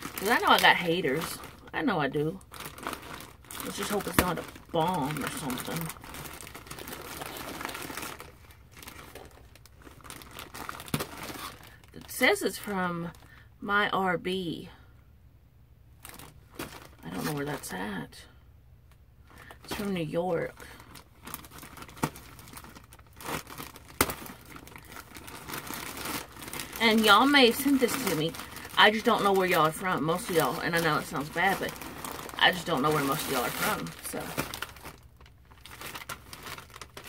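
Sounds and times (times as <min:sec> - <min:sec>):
plastic bag crinkling: 0:00.0 - 0:13.4, 0:16.0 - 0:17.9, 0:19.3 - 0:37.0.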